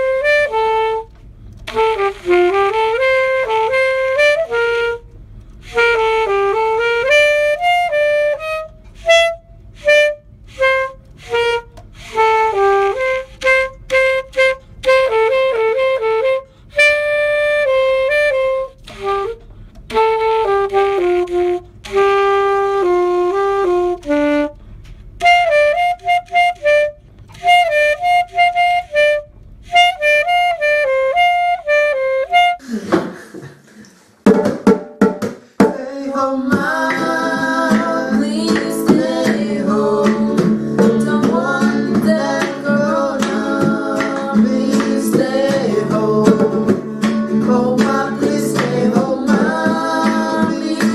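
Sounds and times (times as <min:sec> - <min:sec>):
saxophone solo melody: 0:00.0 - 0:32.6, 0:36.7 - 0:50.9.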